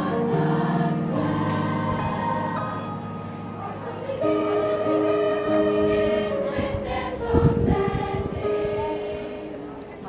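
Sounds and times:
choir singing long notes: 0.0 - 10.0.

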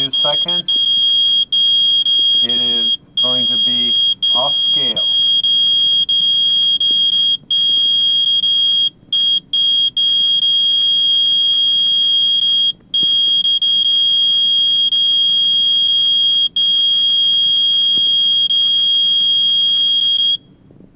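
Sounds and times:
radiation meter alarm tone: 0.0 - 20.6.

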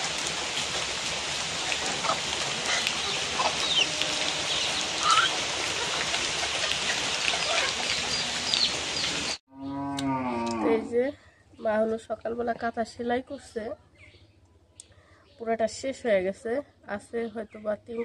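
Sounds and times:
outdoor hiss: 0.0 - 9.4
faint animal calls: 1.8 - 8.7.

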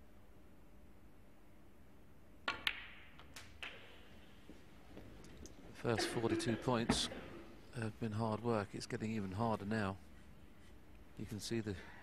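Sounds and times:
cue and snooker balls clicking: 2.4 - 4.2
snooker balls touching: 2.4 - 7.7.

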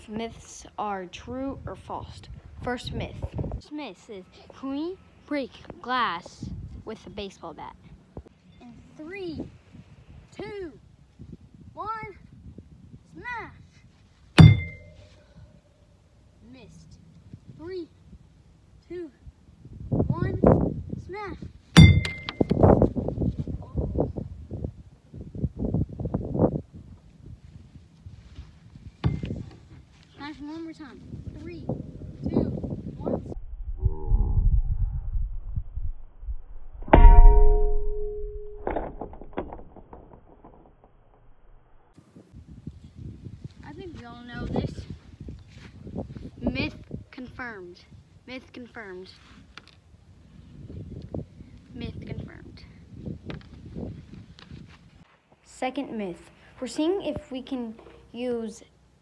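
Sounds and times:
baseball bat striking hard object: 14.4 - 15.0, 21.8 - 22.6, 36.9 - 38.7.

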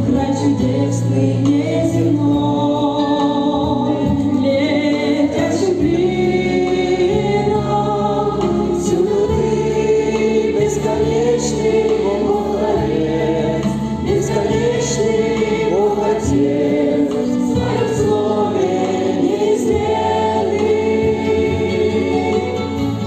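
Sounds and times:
congregation singing a hymn: 0.0 - 23.0
low instrumental accompaniment: 0.0 - 23.0.

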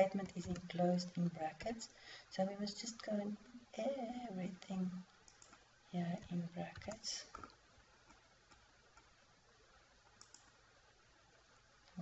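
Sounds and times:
faint keyboard or mouse clicks: 5.3 - 5.6, 6.2 - 9.1, 10.1 - 10.6.

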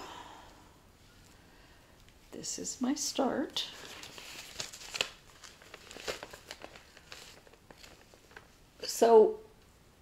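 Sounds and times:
stiff fabric rustling and crinkling: 3.6 - 8.9.

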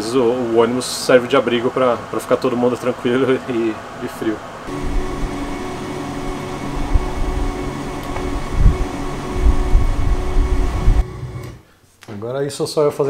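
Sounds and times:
tour coach engine droning hum: 4.7 - 11.5
uneven low rumbling: 4.7 - 11.5.

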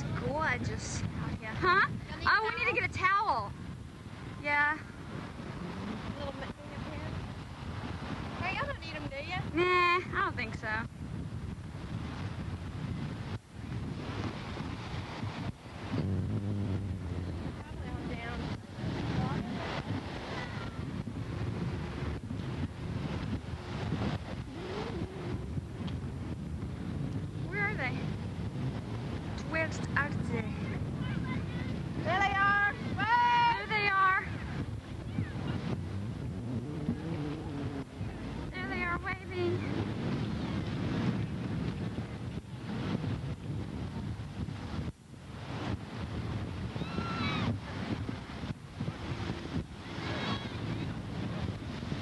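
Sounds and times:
ocean surf: 0.0 - 10.6, 11.5 - 52.0
wind buffeting microphone: 0.0 - 52.0.

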